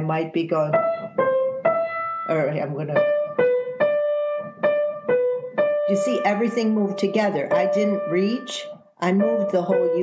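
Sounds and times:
piano notes: 0:00.0 - 0:10.0.

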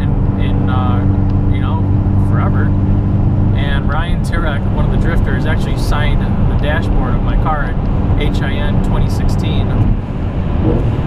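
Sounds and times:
man speaking: 0:00.0 - 0:02.8, 0:03.6 - 0:09.9
car engine and road drone: 0:00.0 - 0:11.0.

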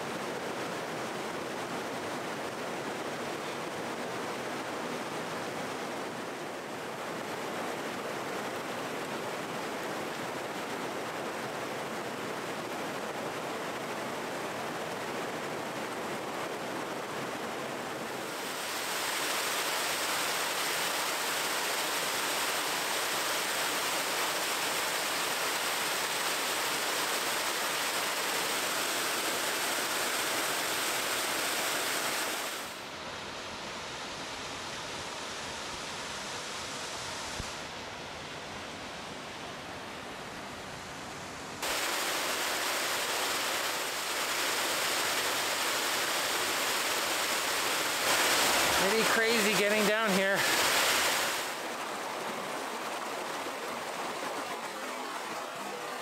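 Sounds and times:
creek waterfall rushing: 0:00.0 - 0:56.0.

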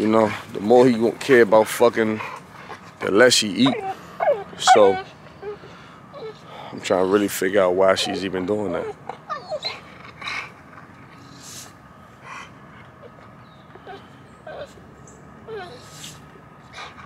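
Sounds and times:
dog whining: 0:03.6 - 0:06.5, 0:07.9 - 0:11.4, 0:13.0 - 0:17.0.

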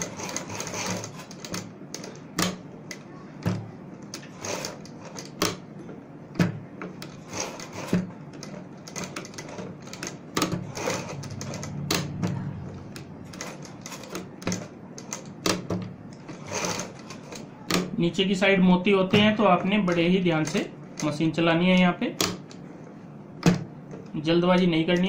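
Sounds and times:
sewing machine humming: 0:00.0 - 0:02.3, 0:04.2 - 0:05.4, 0:07.1 - 0:14.6, 0:16.3 - 0:17.6.

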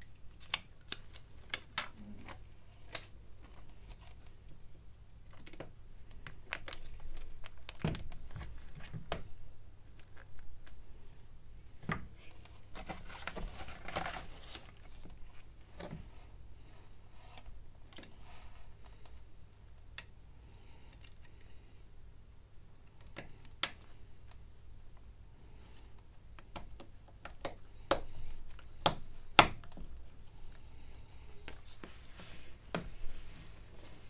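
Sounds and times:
soft rustle: 0:06.7 - 0:19.4, 0:28.3 - 0:34.0.

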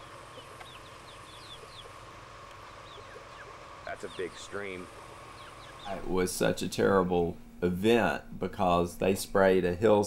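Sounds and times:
high bird chirps: 0:00.0 - 0:02.0, 0:02.6 - 0:06.0.

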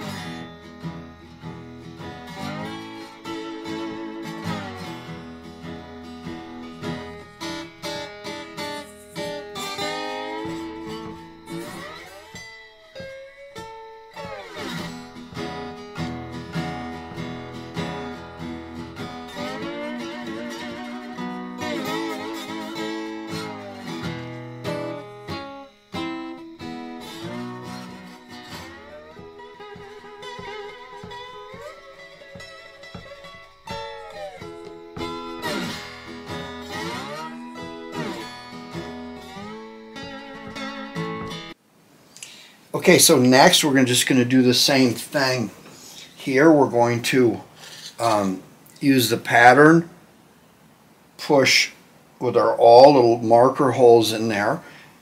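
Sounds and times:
slide guitar music: 0:00.0 - 0:41.6, 0:42.3 - 0:49.9, 0:51.2 - 0:54.8.

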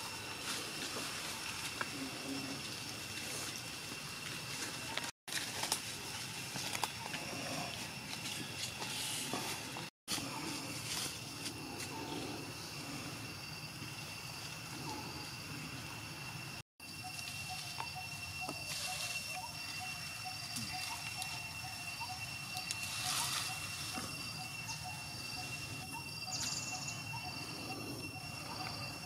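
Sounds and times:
high-pitched insect drone: 0:00.0 - 0:05.1, 0:05.8 - 0:29.0.

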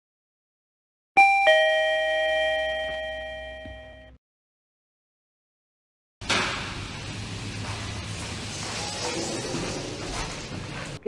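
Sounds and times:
two-tone lift chime: 0:01.2 - 0:04.2.

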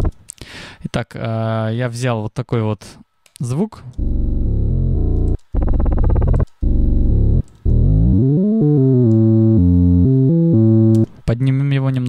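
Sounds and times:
synth bass notes: 0:04.0 - 0:11.1.

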